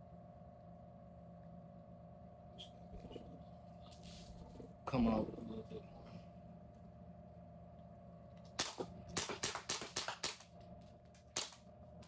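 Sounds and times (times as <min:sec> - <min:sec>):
air pistol shots: 0:08.6 - 0:10.4.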